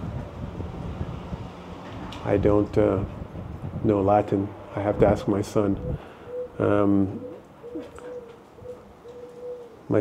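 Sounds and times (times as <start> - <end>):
bird cooing: 5.7 - 10.0.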